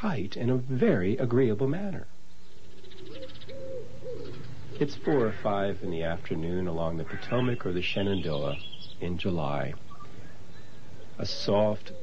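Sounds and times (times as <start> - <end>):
dove cooing: 2.7 - 6.0, 9.9 - 12.0.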